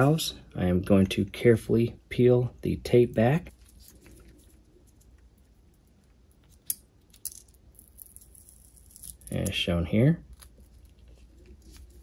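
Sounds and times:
adhesive tape being peeled: 7.7s - 9.4s, 10.3s - 12.0s.

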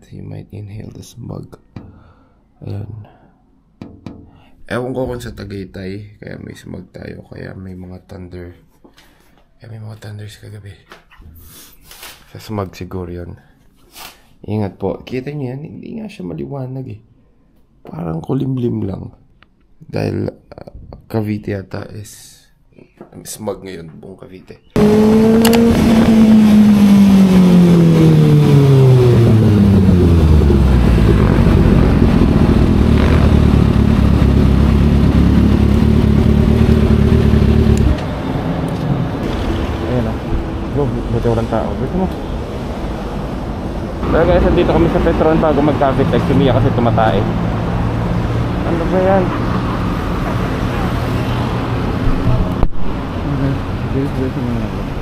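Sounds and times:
motorcycle engine decelerating: 24.8s - 54.9s
cars passing on road: 24.8s - 55.0s.

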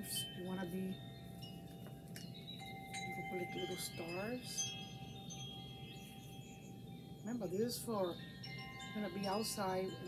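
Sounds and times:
chimes ringing: 0.0s - 10.0s.

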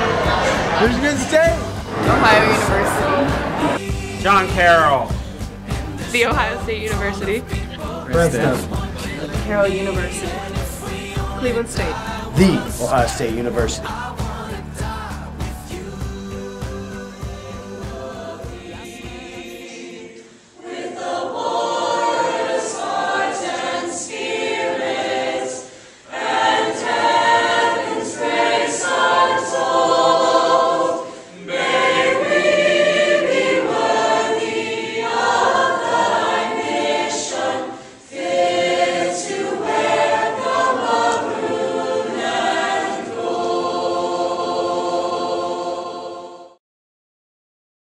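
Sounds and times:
choir singing: 0.0s - 46.6s
music: 0.0s - 46.6s.

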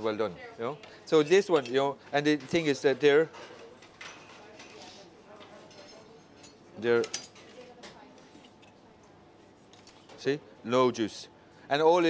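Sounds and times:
cutlery and plates clinking: 1.2s - 8.8s.

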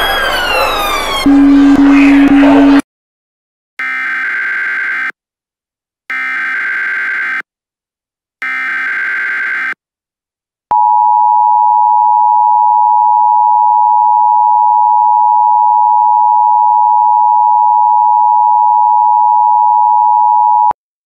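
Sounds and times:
two-tone alarm: 0.0s - 2.8s, 8.4s - 9.8s.

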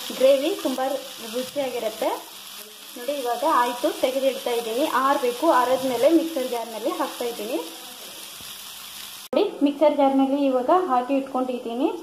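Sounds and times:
food sizzling in a pan: 0.0s - 9.3s.

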